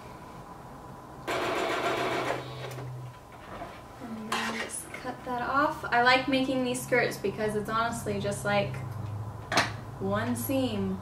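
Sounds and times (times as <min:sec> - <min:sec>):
electric sewing machine stitching: 0:01.3 - 0:02.9
sewing machine motor hum: 0:01.3 - 0:02.9.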